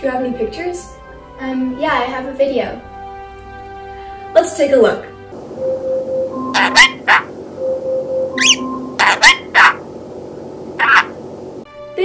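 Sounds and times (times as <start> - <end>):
background music held notes: 0.0 - 12.0
parrot chirping and whistling: 5.5 - 9.9, 10.8 - 11.2.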